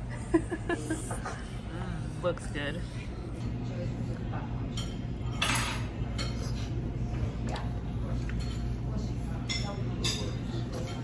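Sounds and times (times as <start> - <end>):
low room hum: 0.0 - 11.0
clatter of dishes and cutlery: 4.6 - 11.0.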